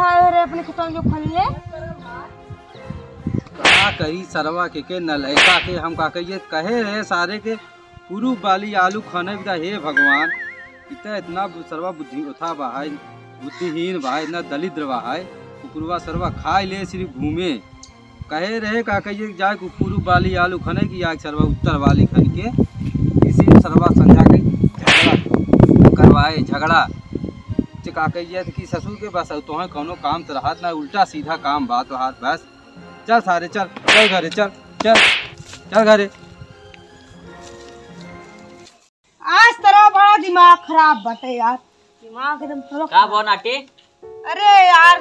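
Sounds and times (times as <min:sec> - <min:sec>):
loud whip-like crack: 0:03.6 - 0:04.1, 0:05.4 - 0:05.8, 0:24.8 - 0:25.3, 0:33.8 - 0:35.4.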